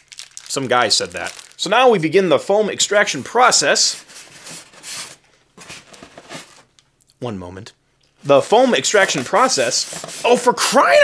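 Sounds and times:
hand rustling in cardboard box: 1.1 - 1.6, 4.0 - 6.7.

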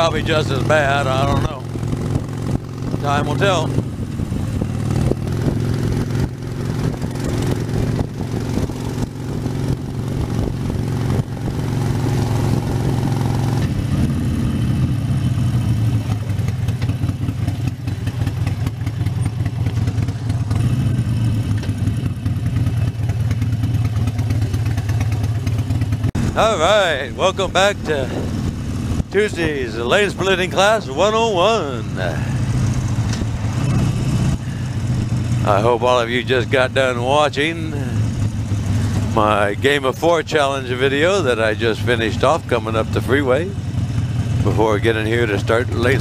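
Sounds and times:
motorcycle engine running: 0.0 - 46.0.

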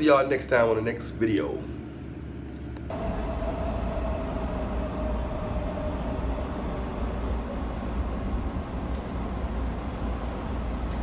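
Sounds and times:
low machine rumble with hiss: 0.0 - 11.0
faint humming tone: 1.6 - 11.0.

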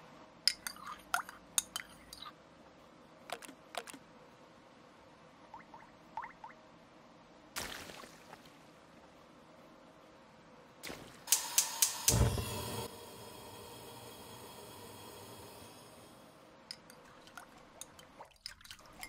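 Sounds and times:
stove igniter clicking: 11.3 - 12.9
gas flame whoosh and hiss: 11.3 - 16.0
spoon clinking in saucepan: 16.7 - 19.0.

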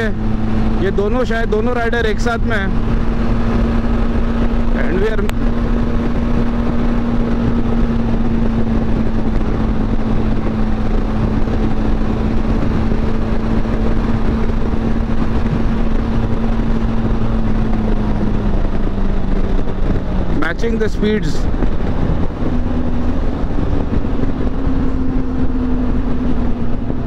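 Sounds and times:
motorcycle engine cruising: 0.0 - 27.0
wind rushing: 0.0 - 27.0.

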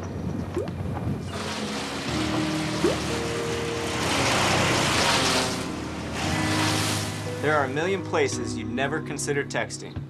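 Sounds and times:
wood chipper shredding branches: 1.2 - 8.0
music with held tones: 1.3 - 10.0.

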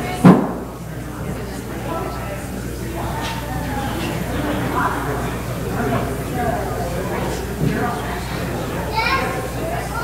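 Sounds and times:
people talking in echoing hall: 0.0 - 10.0
child's voice: 8.9 - 10.0.

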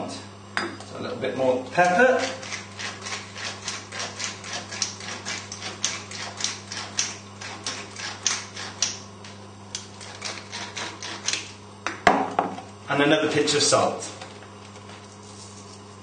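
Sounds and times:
pepper mill grinding: 1.8 - 9.0, 9.8 - 11.5.

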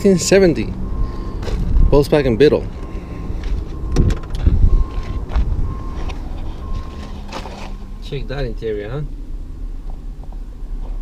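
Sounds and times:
wind rumble on microphone: 1.6 - 2.1, 3.3 - 7.0.

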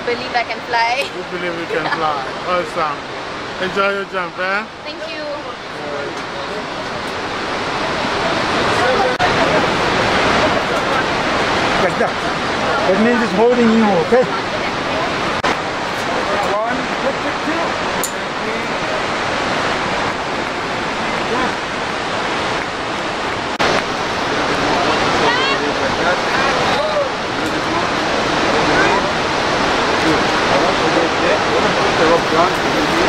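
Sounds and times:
waterfall and river rushing: 0.0 - 33.0
faint voices: 4.2 - 22.5.

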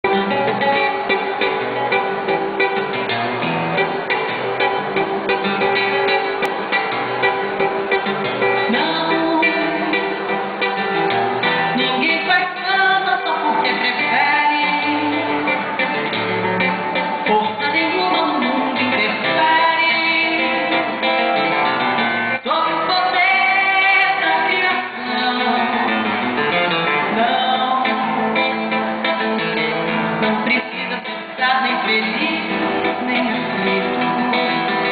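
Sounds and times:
nylon-string acoustic guitar: 0.0 - 34.9
woman singing: 8.6 - 10.8, 11.7 - 16.2, 16.9 - 21.3, 22.3 - 34.9.

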